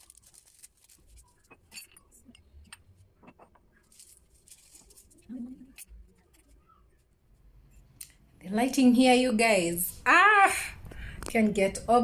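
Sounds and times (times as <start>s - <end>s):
ceramic mugs clinking: 1.4s - 3.7s.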